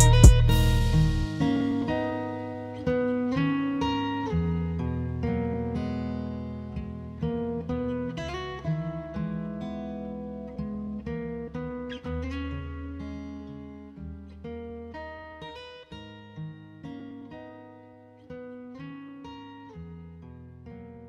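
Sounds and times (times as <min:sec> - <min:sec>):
low bass line: 0:00.0 - 0:01.5
plucked guitar melody: 0:00.0 - 0:21.0.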